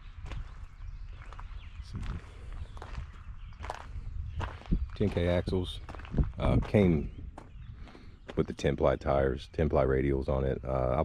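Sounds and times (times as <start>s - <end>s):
footsteps crunching on gravel: 0.0s - 8.7s.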